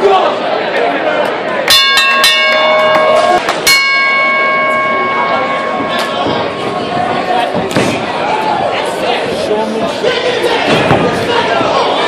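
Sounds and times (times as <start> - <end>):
crowd chatter: 0.0 - 12.0
metal bell clanging: 1.7 - 7.0.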